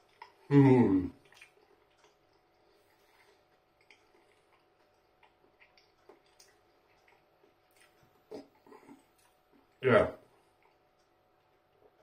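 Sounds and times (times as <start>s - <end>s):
chewing with mouth closed: 0.0s - 12.0s.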